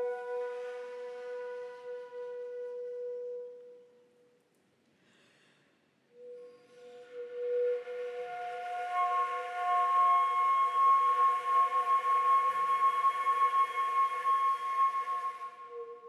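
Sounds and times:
concert flute playing held tones: 0:00.0 - 0:04.3, 0:06.1 - 0:16.0.

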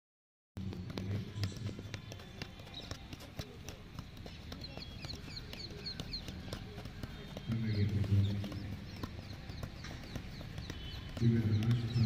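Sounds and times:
footballs tapping off feet: 0:00.6 - 0:12.0.

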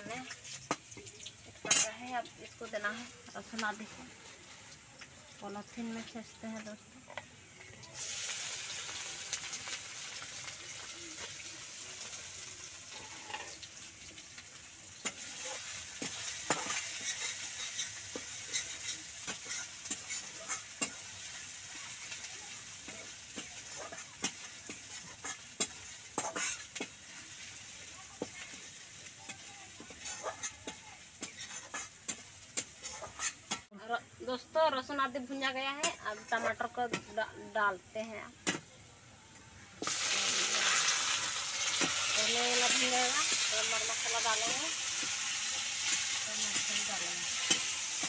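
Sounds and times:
chillies sizzling in oil: 0:00.0 - 0:48.0
spatula scraping a pan: 0:12.9 - 0:13.6, 0:15.0 - 0:33.7, 0:35.7 - 0:37.1, 0:39.9 - 0:48.0.

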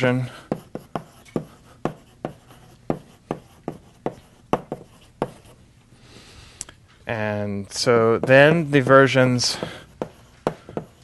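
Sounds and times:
chalk tapping on blackboard: 0:00.4 - 0:05.6, 0:08.1 - 0:11.0.

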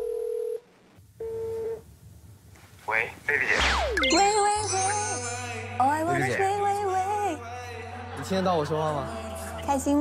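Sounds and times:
phone call tone beeps: 0:01.2 - 0:01.8.

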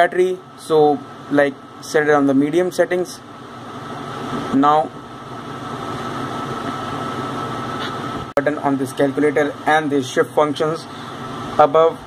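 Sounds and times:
background hum and hiss: 0:00.0 - 0:12.0
thin high whine: 0:00.0 - 0:12.0.

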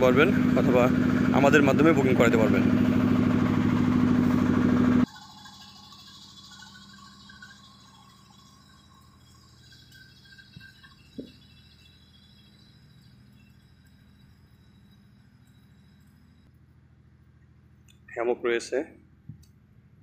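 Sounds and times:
vehicle engine humming: 0:00.0 - 0:05.1.

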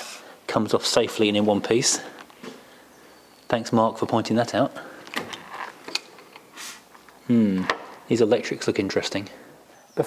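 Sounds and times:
short hiss: 0:06.5 - 0:06.9.

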